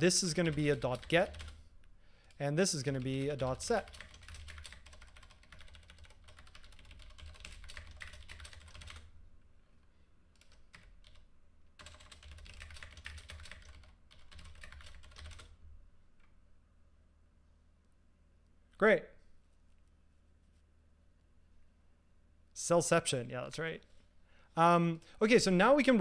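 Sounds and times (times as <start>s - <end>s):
typing on computer keyboard: 0.3s - 1.6s, 2.9s - 9.1s, 10.4s - 15.6s.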